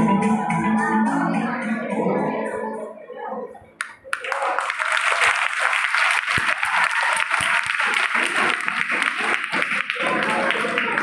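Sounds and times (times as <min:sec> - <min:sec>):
audience applauding: 0:03.8 - 0:11.0.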